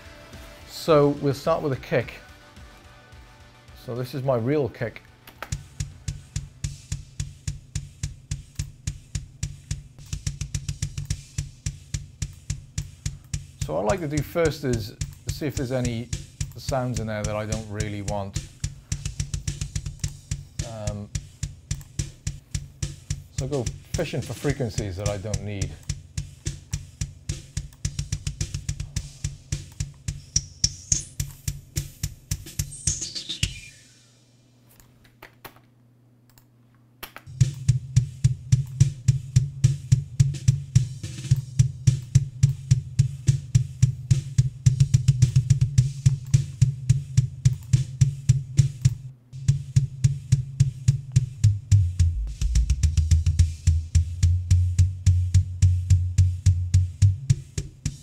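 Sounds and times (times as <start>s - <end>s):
faint snare and cymbals: 0.0s - 34.6s, 37.2s - 58.0s
kick drum hits: 5.4s - 32.7s, 37.3s - 58.0s
whistling eq sweep tone: 32.6s - 34.2s.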